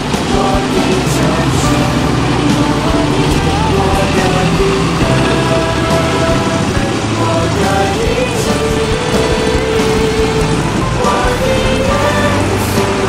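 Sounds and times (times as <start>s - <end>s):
motorcycle engines passing: 0.0s - 13.0s.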